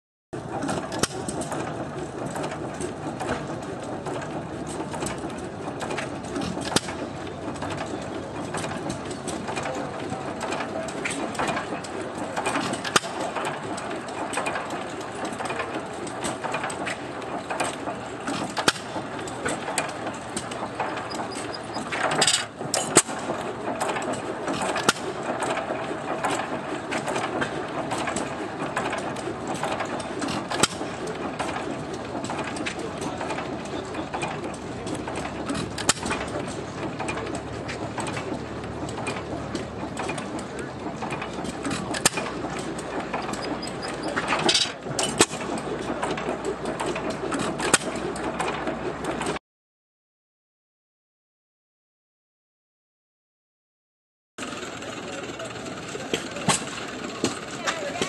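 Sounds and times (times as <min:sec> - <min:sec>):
stationary engine clatter: 0:00.4 - 0:49.4, 0:54.4 - 0:58.0
engine sharp pops: 0:17.6 - 0:25.6.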